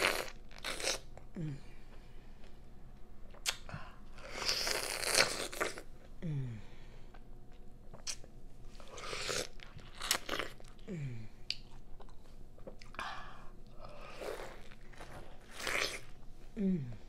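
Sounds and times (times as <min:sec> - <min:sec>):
person humming mm: 0:01.3 - 0:01.8, 0:06.2 - 0:06.8, 0:10.9 - 0:11.4, 0:16.5 - 0:17.0.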